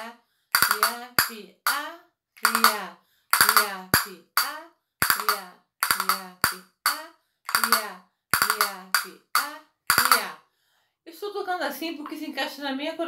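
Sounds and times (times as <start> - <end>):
castanets clacking: 0.6 - 1.3, 2.4 - 6.6, 7.5 - 10.3
person speaking: 0.6 - 10.4.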